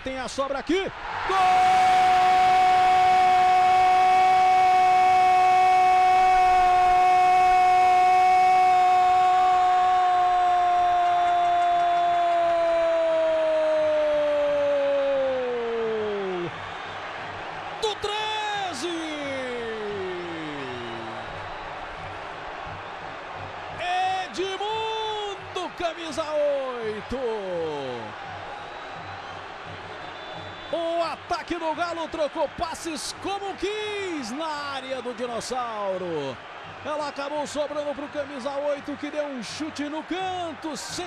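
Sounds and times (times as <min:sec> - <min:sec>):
man shouting drawn-out goal cry: 0:01.2 - 0:16.5.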